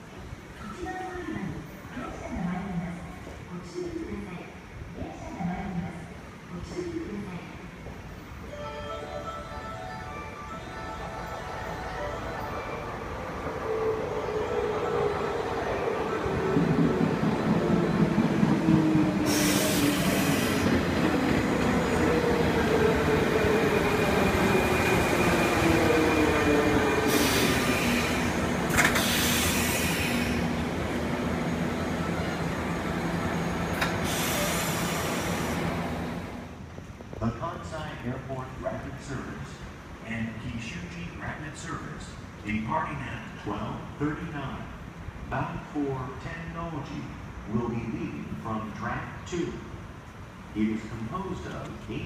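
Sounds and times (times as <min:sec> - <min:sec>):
wheels rumbling on rail: 0:12.9 - 0:37.2.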